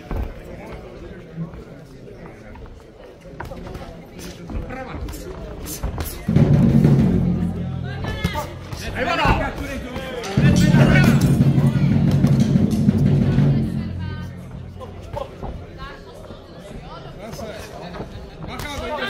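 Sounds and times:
loud low drumming: 0:06.3 - 0:09.6, 0:10.3 - 0:15.6.

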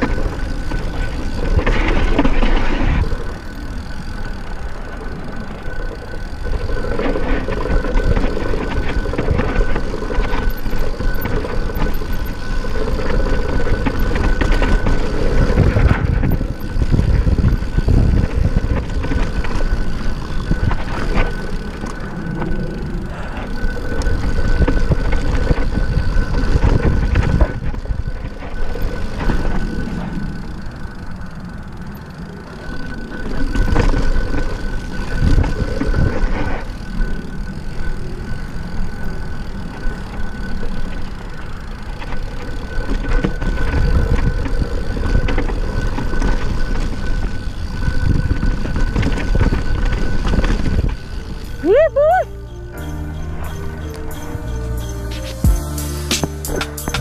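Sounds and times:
wind buffeting microphone: 0:00.0 - 0:55.5
bike knocking and rattling: 0:00.0 - 0:57.0
bike tyres rolling over dirt: 0:00.0 - 0:57.0.

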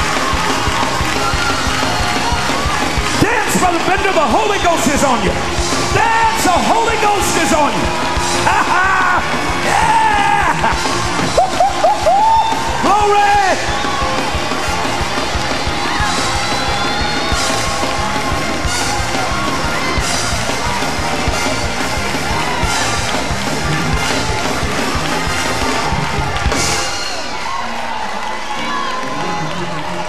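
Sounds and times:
church band music: 0:00.0 - 0:30.0
congregation shouting and cheering: 0:00.0 - 0:30.0.

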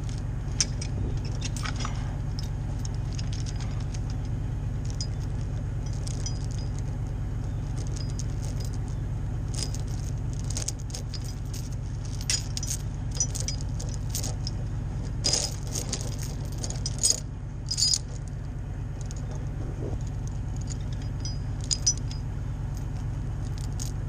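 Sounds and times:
chain clinking and rattling: 0:00.0 - 0:24.0
truck engine droning: 0:00.0 - 0:24.0.

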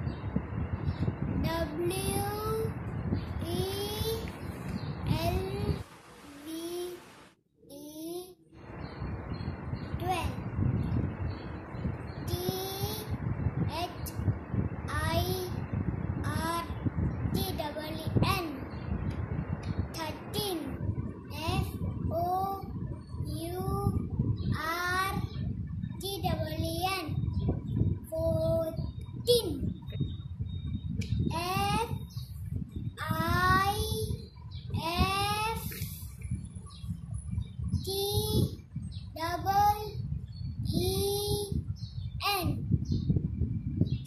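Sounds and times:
boy chanting: 0:01.4 - 0:02.8, 0:05.0 - 0:07.1, 0:12.2 - 0:14.1, 0:14.9 - 0:18.8, 0:19.9 - 0:25.4, 0:28.0 - 0:29.7, 0:33.0 - 0:36.0, 0:37.8 - 0:40.0
boy chanting sing-song: 0:33.0 - 0:34.2.

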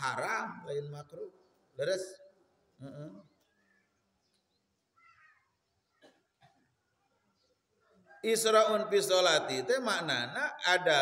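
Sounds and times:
faint animal call: 0:05.0 - 0:05.6.

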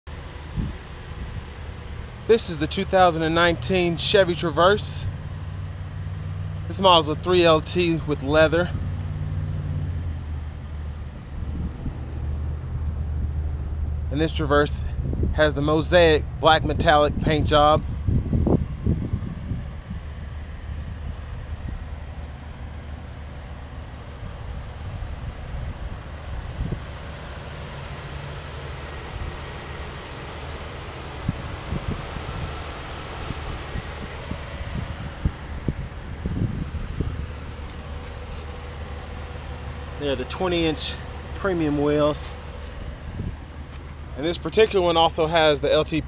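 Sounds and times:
low vehicle hum: 0:00.1 - 0:46.0.

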